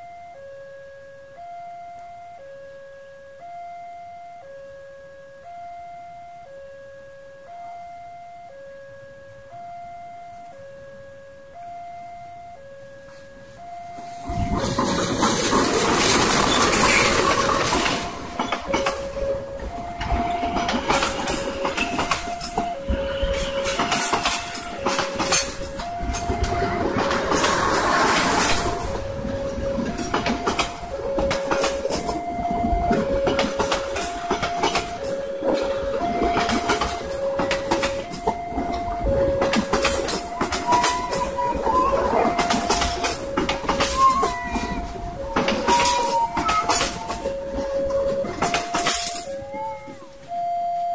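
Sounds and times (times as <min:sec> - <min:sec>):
two-tone crossing alarm: 0:00.0 - 0:50.9
train wheels clickety-clack: 0:13.9 - 0:50.0.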